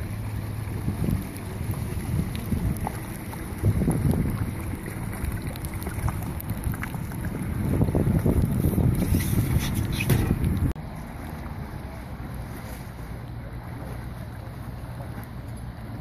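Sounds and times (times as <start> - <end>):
wind buffeting microphone: 0.0 - 10.8
outboard motors running: 0.0 - 16.0.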